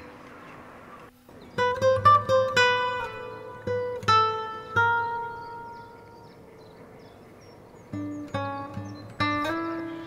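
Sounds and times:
faint high bird chirps: 0:00.0 - 0:03.4, 0:04.1 - 0:10.0
acoustic guitar chord ringing: 0:01.5 - 0:06.2, 0:07.9 - 0:10.0.

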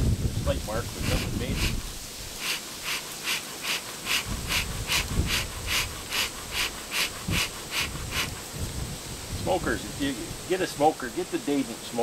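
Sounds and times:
bellows puffing hiss of air: 0:00.3 - 0:10.6.

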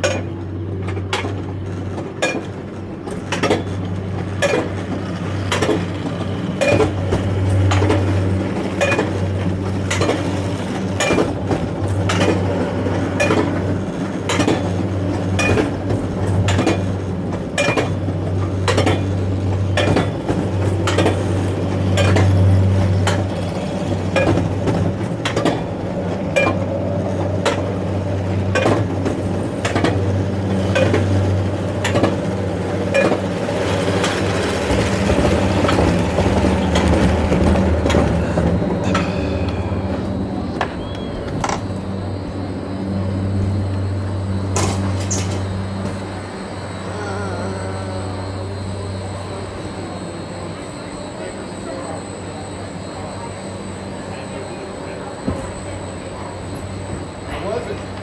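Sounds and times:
low hum of coaster cart: 0:00.0 - 0:58.0.

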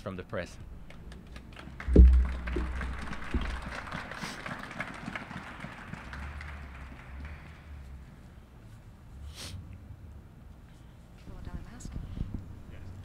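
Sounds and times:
low urban rumble: 0:00.0 - 0:13.0
faint scattered taps: 0:00.8 - 0:03.6
low thump: 0:01.9 - 0:03.8.

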